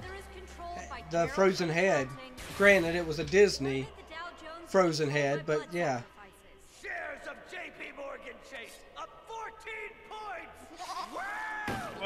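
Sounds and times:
cartoon sheep bleating: 0:10.7 - 0:11.4.

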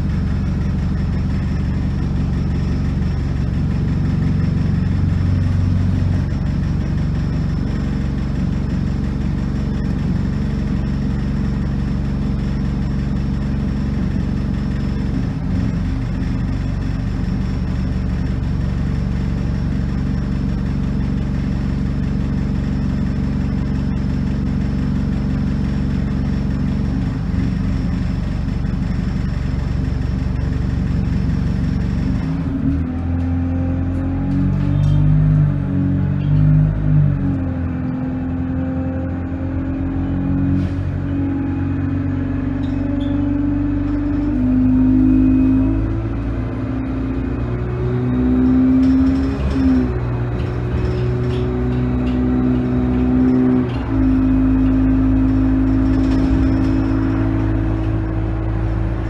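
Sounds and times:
bus engine idling: 0:00.0 - 0:59.0.

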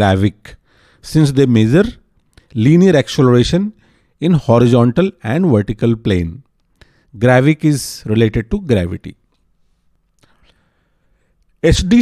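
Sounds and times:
man narrating: 0:00.0 - 0:02.0, 0:02.6 - 0:06.4, 0:07.2 - 0:09.2, 0:11.6 - 0:12.0
faint short breath: 0:09.6 - 0:11.4.

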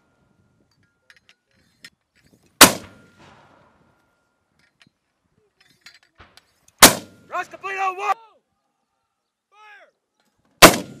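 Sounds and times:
mortar firing report: 0:06.2 - 0:08.2, 0:10.6 - 0:11.0.

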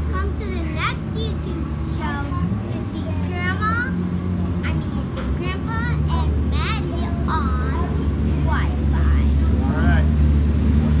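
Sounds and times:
child speaking: 0:00.0 - 0:04.0, 0:04.6 - 0:09.6
engines humming: 0:00.0 - 0:11.0.

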